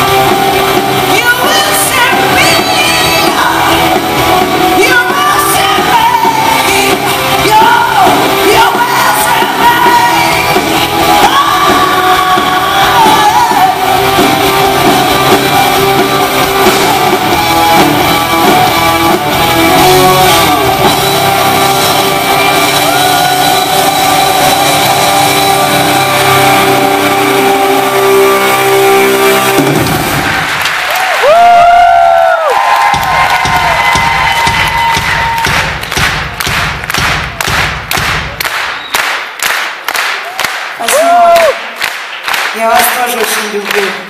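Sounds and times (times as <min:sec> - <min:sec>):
live rock band playing: 0:00.0 - 0:30.6, 0:32.8 - 0:38.6
shrill whistles: 0:38.7 - 0:39.1.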